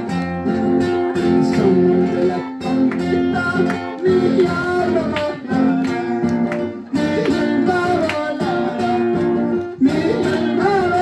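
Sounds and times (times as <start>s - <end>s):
acoustic guitar strumming chords: 0.0s - 11.0s.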